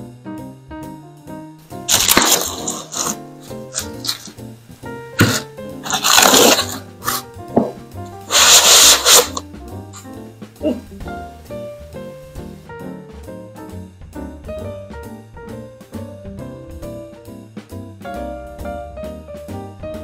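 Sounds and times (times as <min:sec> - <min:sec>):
background music: 0:00.0 - 0:20.0
plastic and foam packaging rustling: 0:01.9 - 0:04.4, 0:05.2 - 0:09.4.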